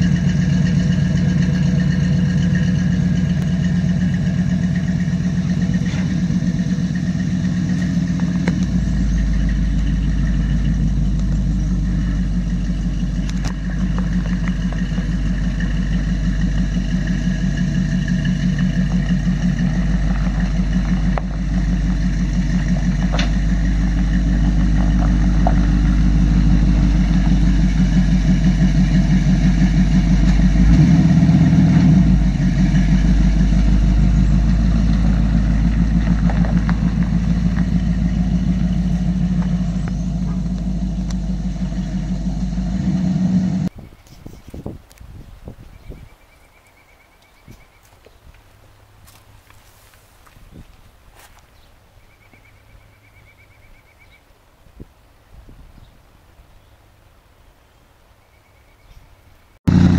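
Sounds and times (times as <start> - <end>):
truck engine idling: 0.0 - 43.7, 59.7 - 59.9
deep engine rumble: 0.0 - 46.2, 59.6 - 59.9.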